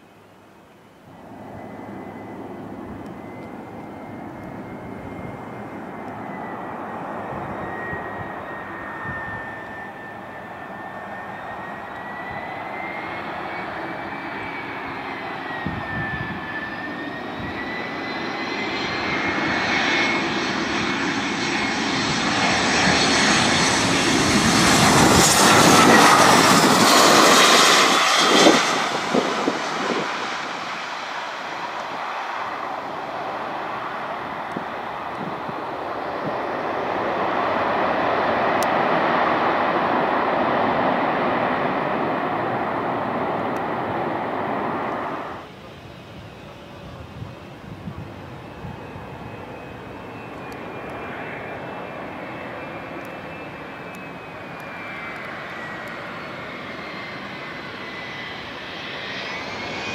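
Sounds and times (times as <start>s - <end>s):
jet airliner engine whine: 0.0s - 59.9s.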